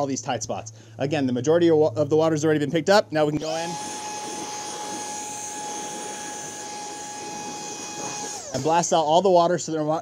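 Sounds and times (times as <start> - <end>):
cordless blower whine and air rush: 3.4 - 9.1.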